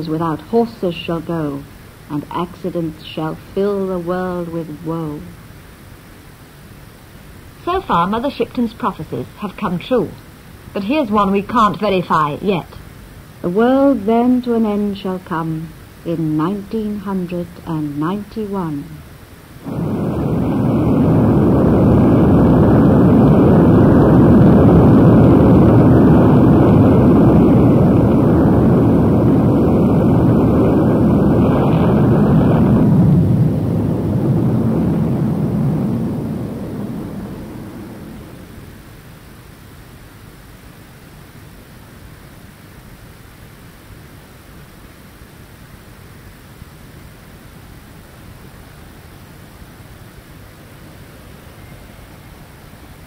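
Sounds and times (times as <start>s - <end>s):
faint tape hiss: 0.0s - 53.0s.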